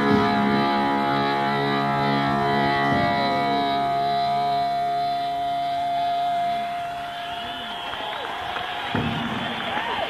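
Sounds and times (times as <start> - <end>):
sustained electric guitar note: 0.0 - 7.1.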